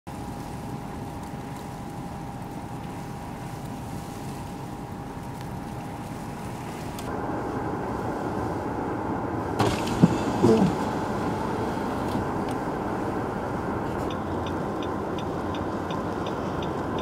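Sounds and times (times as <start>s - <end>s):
faint constant hum: 0.1s - 16.8s
vehicle noise: 0.1s - 17.0s.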